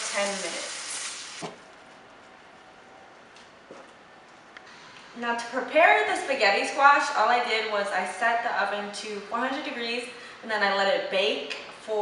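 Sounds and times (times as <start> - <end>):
sauce sizzling in a frying pan: 0.0 - 1.4
simmering sauce hiss: 0.0 - 1.4.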